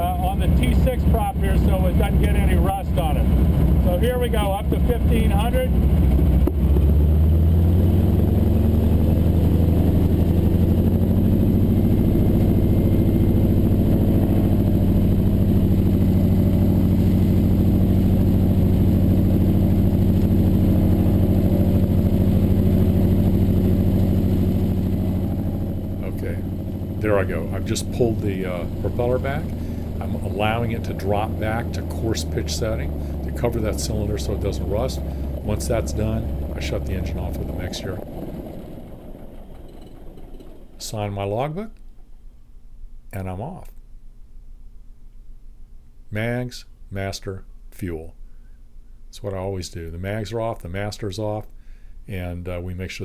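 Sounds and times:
radial aircraft engine running: 0:00.0 - 0:41.1.

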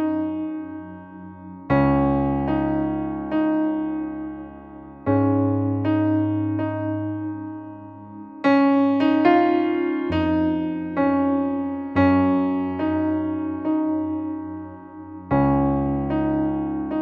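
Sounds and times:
slow piano playing: 0:00.0 - 0:17.0.

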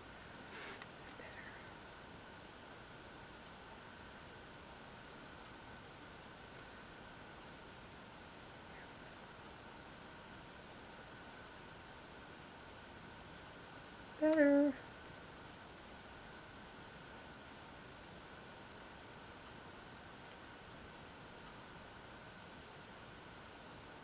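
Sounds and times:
background hiss: 0:00.0 - 0:24.0
faint high tone: 0:14.2 - 0:14.8.

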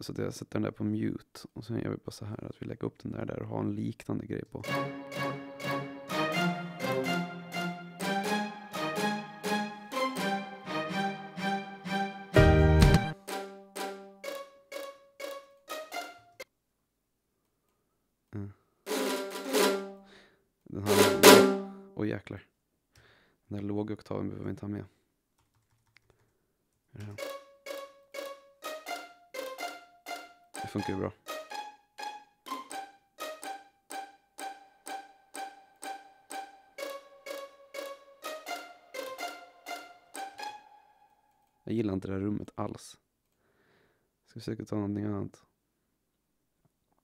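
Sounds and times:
short detached string notes: 0:04.6 - 0:16.4, 0:20.8 - 0:21.8, 0:27.0 - 0:41.2
loud hits with drum crash: 0:20.9 - 0:21.7.

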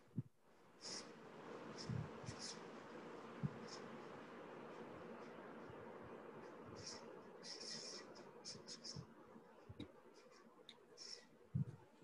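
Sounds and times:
faint microphone hiss: 0:00.0 - 0:12.0
high hissy ticks: 0:00.0 - 0:12.0.

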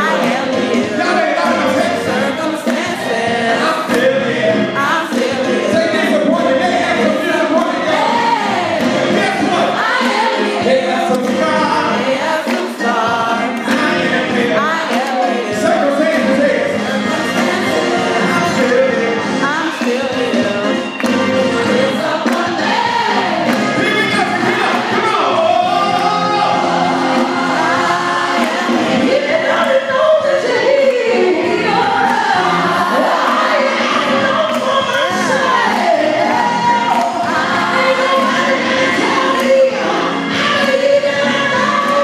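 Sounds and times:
gospel voices singing over band: 0:00.0 - 0:42.0.

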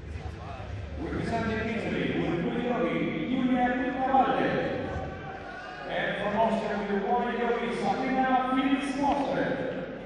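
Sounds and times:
man talking: 0:00.0 - 0:10.0.

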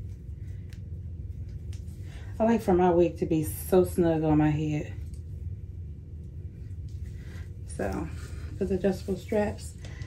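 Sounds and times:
soft handling noises: 0:00.0 - 0:02.7, 0:04.8 - 0:10.0
low background rumble: 0:00.0 - 0:10.0.

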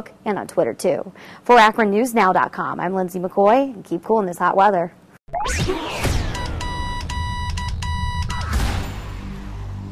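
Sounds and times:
short high beeping notes: 0:05.3 - 0:08.6
electronic theme music: 0:05.3 - 0:09.9.

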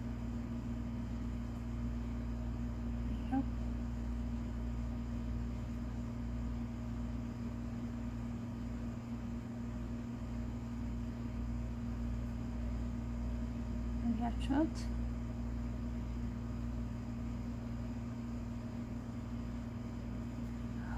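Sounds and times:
steady low hum: 0:00.0 - 0:20.9.

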